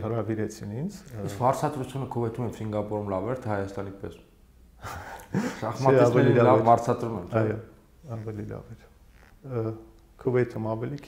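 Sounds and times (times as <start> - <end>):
man speaking: 0.0 - 4.3, 5.4 - 11.0
sharp intake of breath: 4.8 - 5.7.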